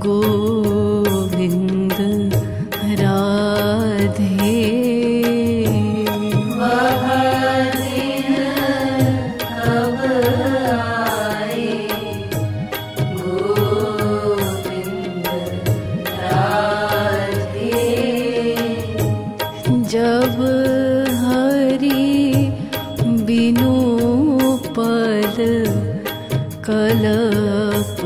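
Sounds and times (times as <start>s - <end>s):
percussion strokes: 0.0s - 28.0s
person singing devotional song: 0.0s - 28.0s.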